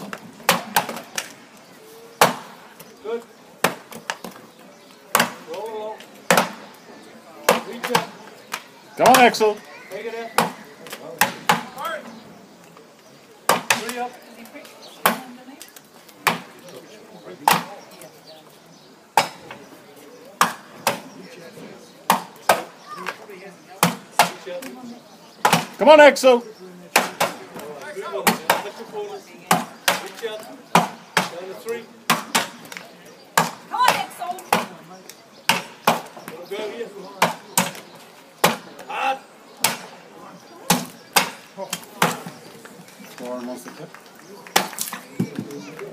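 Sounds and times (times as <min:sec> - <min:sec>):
axes chopping wooden blocks: 0:00.0 - 0:01.3, 0:02.2 - 0:02.6, 0:05.1 - 0:05.6, 0:06.3 - 0:06.7, 0:13.5 - 0:14.0, 0:20.4 - 0:21.1, 0:22.1 - 0:23.2, 0:25.4 - 0:25.8, 0:26.9 - 0:28.7, 0:29.5 - 0:31.4, 0:32.1 - 0:32.8, 0:33.4 - 0:34.8, 0:35.4 - 0:36.4, 0:37.2 - 0:38.9, 0:39.6 - 0:39.9, 0:40.7 - 0:42.4, 0:44.5 - 0:45.1.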